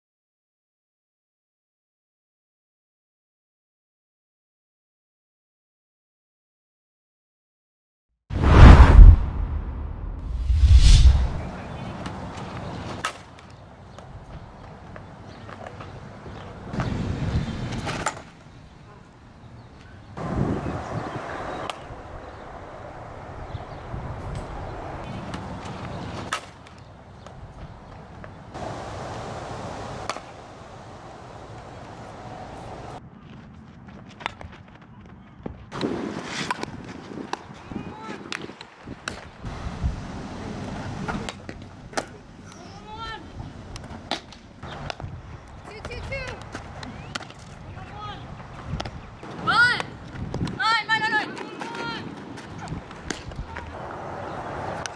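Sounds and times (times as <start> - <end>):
outdoor background noise: 8.3 - 54.9.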